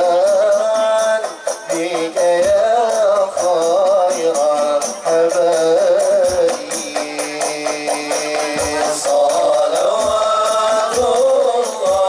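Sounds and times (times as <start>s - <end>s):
men singing together: 0.0s - 12.0s.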